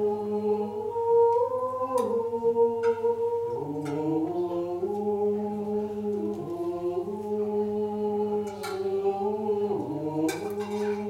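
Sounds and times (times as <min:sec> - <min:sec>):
unaccompanied chant: 0:00.0 - 0:11.0.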